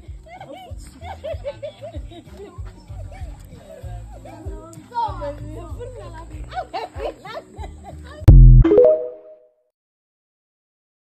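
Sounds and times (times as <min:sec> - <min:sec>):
background music with bass: 0:08.3 - 0:09.2.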